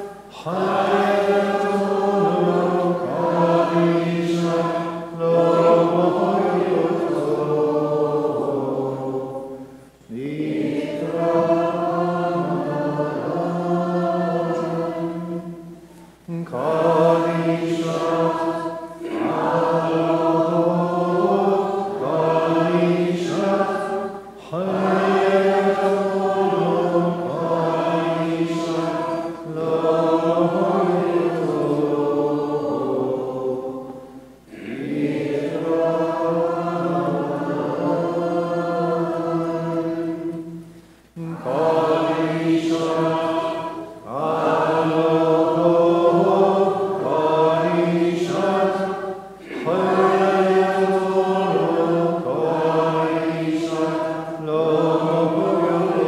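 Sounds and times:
voices singing a slow chant: 0:00.0 - 0:56.0.

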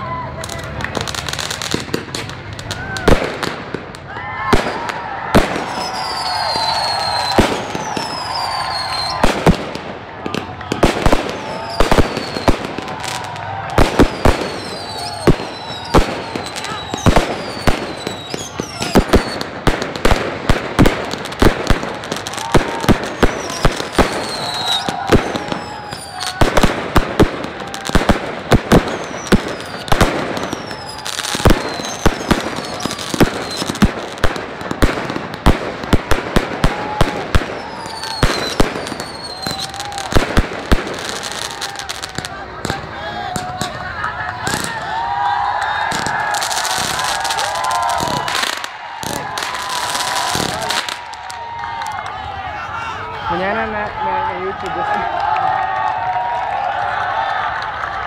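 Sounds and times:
fireworks bangs: 0:00.0 - 0:52.5
falling firework whistles: 0:04.5 - 0:09.5, 0:10.7 - 0:19.6, 0:21.4 - 0:26.7, 0:28.7 - 0:33.9, 0:36.6 - 0:42.3, 0:44.5 - 0:51.4.

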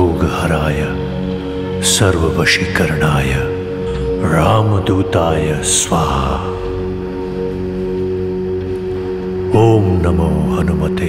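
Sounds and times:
sustained drone music: 0:00.0 - 0:11.0.

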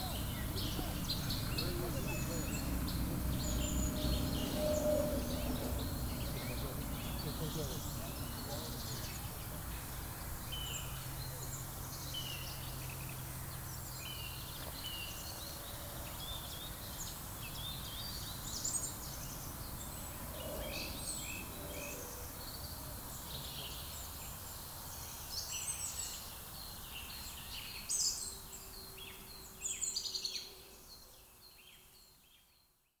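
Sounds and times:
low outdoor rumble: 0:00.0 - 0:18.1
birds chirping and calling: 0:00.0 - 0:24.4.

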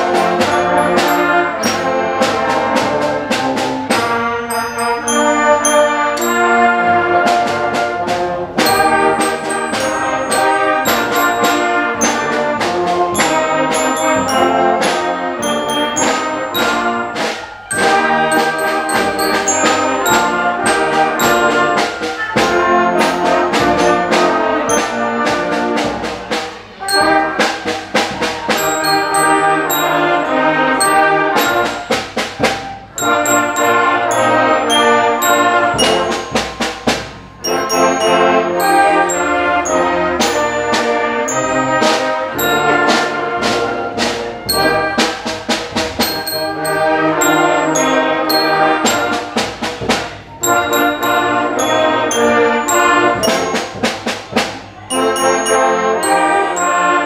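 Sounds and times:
glockenspiel notes: 0:00.0 - 0:57.0
wind band playing: 0:00.0 - 0:57.0.

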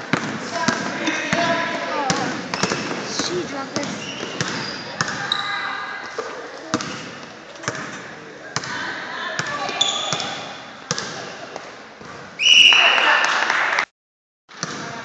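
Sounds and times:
basketball bouncing on wooden floor: 0:00.1 - 0:01.5, 0:02.1 - 0:05.2
chattering voices: 0:00.5 - 0:11.6
referee's whistle blast: 0:12.4 - 0:13.2.

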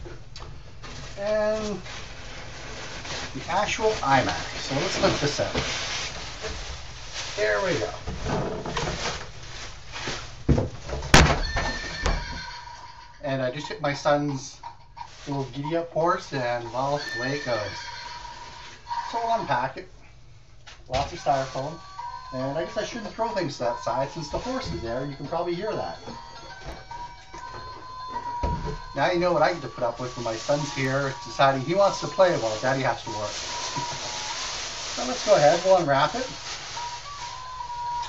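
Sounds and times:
styrofoam rustling and squeaking: 0:00.7 - 0:12.9, 0:13.6 - 0:19.8, 0:20.9 - 0:38.0
electronic toy tune: 0:21.7 - 0:32.2.

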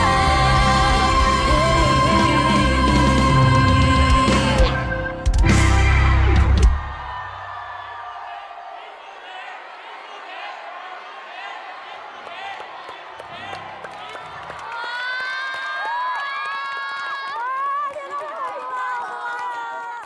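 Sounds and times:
crowd cheering and screaming: 0:00.0 - 0:20.0.

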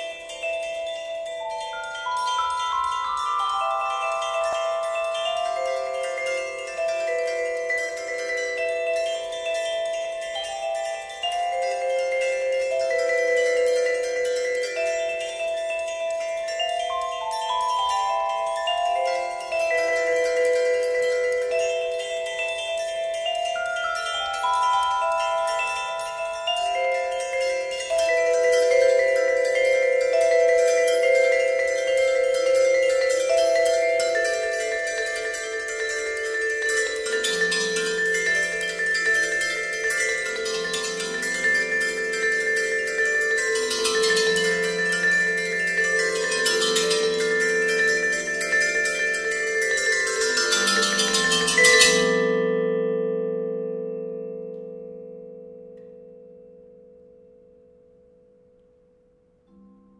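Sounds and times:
vibraphone chords: 0:00.0 - 0:57.8.

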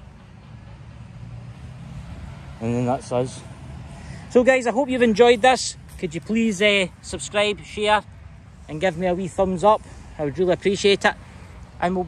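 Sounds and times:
vehicle engine rumble passing: 0:00.0 - 0:12.0.

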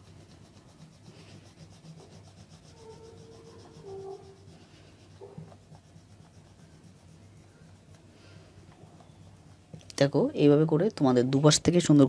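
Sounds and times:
oil pastel scratching on paper: 0:00.0 - 0:09.8.

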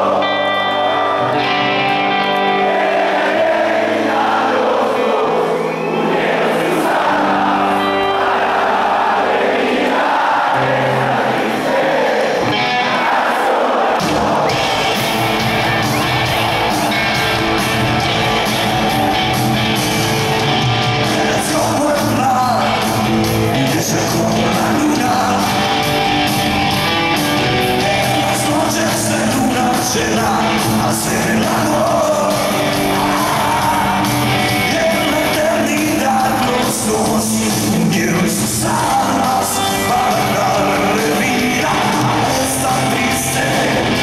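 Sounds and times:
electric guitar: 0:00.0 - 0:09.4, 0:12.3 - 0:13.2, 0:14.0 - 0:44.0
crowd singing along: 0:00.0 - 0:44.0
rock band bass and drums: 0:14.0 - 0:44.0.

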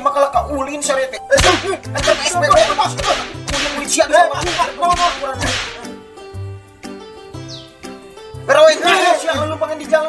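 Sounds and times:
cane swishing lashes: 0:01.4 - 0:05.9
music with bass line: 0:01.4 - 0:05.9.

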